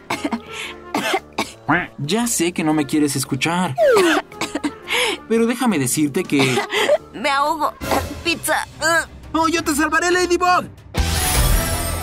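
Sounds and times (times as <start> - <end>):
person coughing and choking: 0.0 - 1.8, 3.8 - 4.9, 6.3 - 7.0, 7.8 - 8.2
quiet background music: 0.0 - 11.1.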